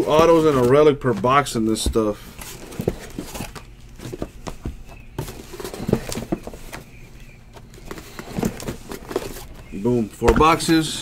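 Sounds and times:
boxes knocking when set down: 0:00.0 - 0:07.0, 0:07.8 - 0:10.9
handling noise: 0:00.0 - 0:11.0.

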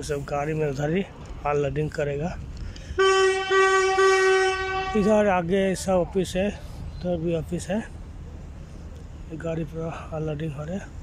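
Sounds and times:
train horn: 0:03.0 - 0:05.1.

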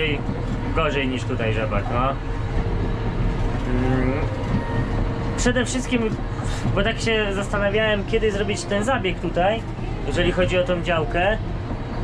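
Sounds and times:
tractor engine running: 0:00.0 - 0:12.0.

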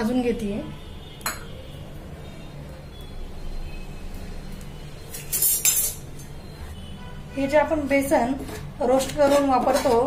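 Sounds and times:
woman's voice: 0:00.0 - 0:00.8, 0:07.4 - 0:10.0
steel bowl clinking on metal pan: 0:05.3 - 0:06.0.

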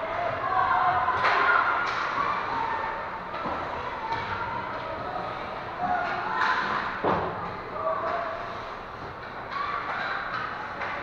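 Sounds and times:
stick and puck clacks: 0:01.2 - 0:02.2, 0:09.1 - 0:11.0.

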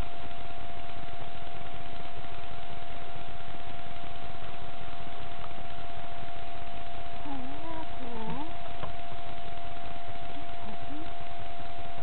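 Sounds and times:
steady tone and hiss: 0:00.0 - 0:12.0
wolf puppy whining: 0:07.2 - 0:08.7.

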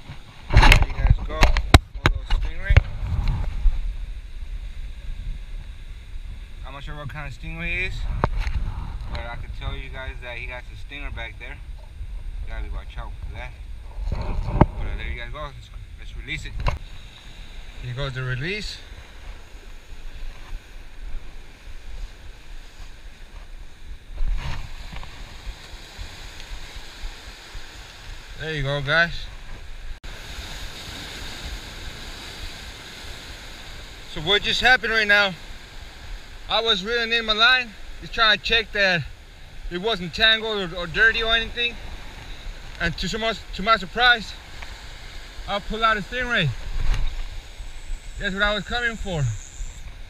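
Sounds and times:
wind buffeting microphone: 0:00.0 - 0:28.4, 0:40.7 - 0:50.0
ocean surf washing against rocks: 0:14.8 - 0:50.0.

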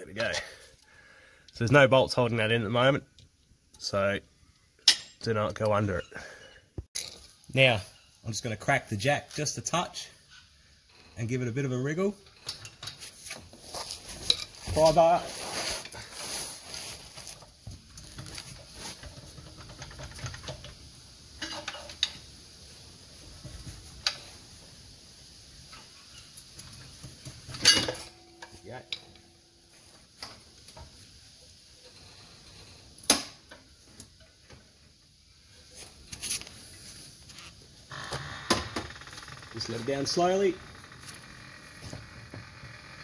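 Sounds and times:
metallic clinks and scrapes: 0:12.2 - 0:17.4.

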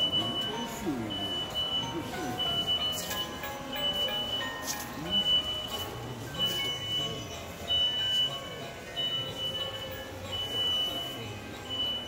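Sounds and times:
faint shop background noise: 0:00.0 - 0:12.0
high-pitched electronic beep: 0:00.0 - 0:12.0.

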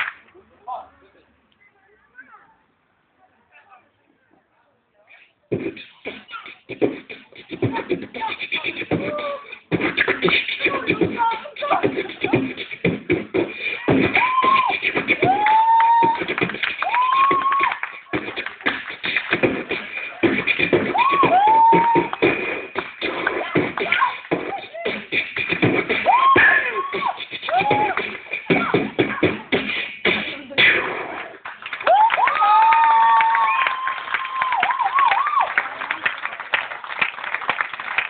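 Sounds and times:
beatboxing clicks and pops: 0:05.5 - 0:31.4
sliding whooping vocal notes: 0:05.6 - 0:33.7.

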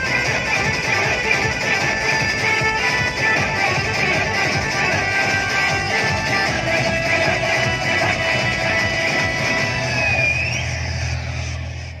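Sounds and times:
loud dance music: 0:00.0 - 0:12.0.

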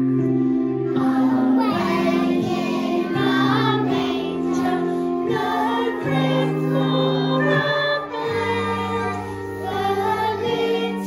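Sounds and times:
electric keyboard chords: 0:00.0 - 0:11.0
children singing: 0:00.9 - 0:11.0.

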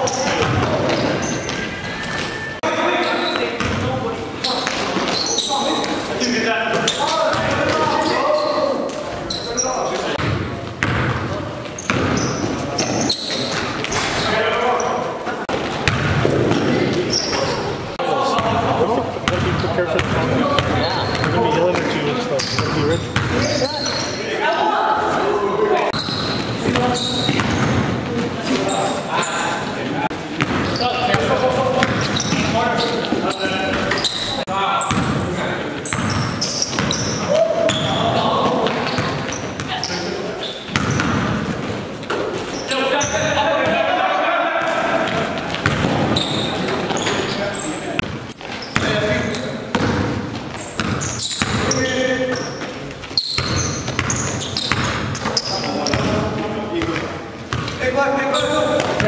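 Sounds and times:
basketball bouncing on gym floor: 0:00.2 - 0:01.6, 0:03.6 - 0:03.9, 0:10.2 - 0:14.0, 0:15.5 - 0:17.4, 0:19.2 - 0:23.6, 0:26.0 - 0:28.6, 0:30.4 - 0:34.0, 0:35.9 - 0:39.7, 0:40.7 - 0:42.2, 0:44.6 - 0:46.5, 0:48.0 - 0:51.9, 0:53.0 - 0:57.8
players shouting: 0:36.9 - 0:38.9, 0:42.7 - 0:47.0.

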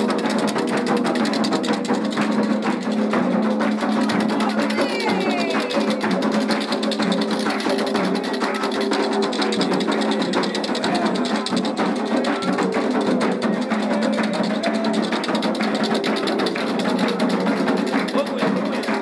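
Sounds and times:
fast hand drumming: 0:00.0 - 0:19.0
group chanting: 0:03.9 - 0:19.0.

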